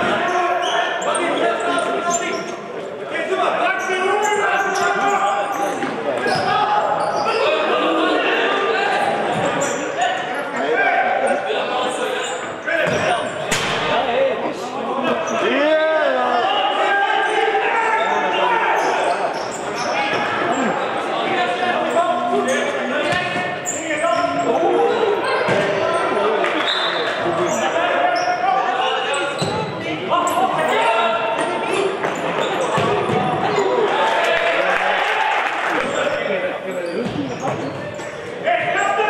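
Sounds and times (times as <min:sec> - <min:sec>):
players shouting in hall: 0:03.1 - 0:13.3, 0:14.6 - 0:36.3, 0:38.3 - 0:39.0.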